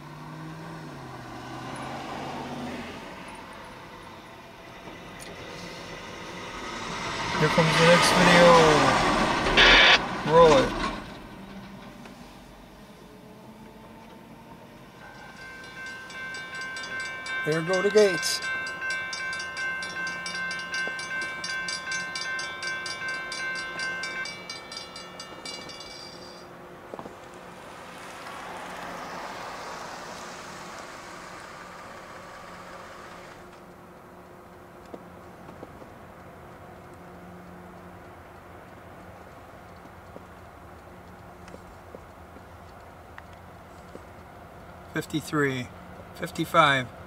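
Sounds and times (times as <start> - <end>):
soft rushing noise: 1.7 - 14.0
railroad crossing bell ringing: 3.0 - 11.9, 14.7 - 29.5, 45.0 - 47.0.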